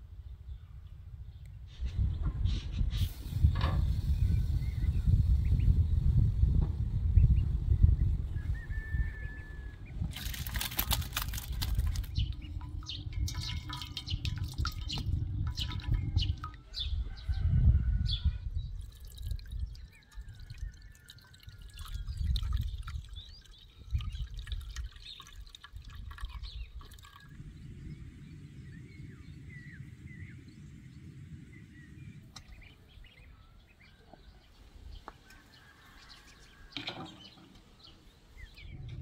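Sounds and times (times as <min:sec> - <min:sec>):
outdoor hush: 0:00.0 - 0:17.6
birds chirping: 0:07.1 - 0:39.0
liquid trickling into a metal pot: 0:10.0 - 0:16.8, 0:18.7 - 0:27.4
liquid dripping: 0:10.1 - 0:16.7, 0:18.8 - 0:27.4
metal spoon scraping a colander: 0:10.2 - 0:16.5.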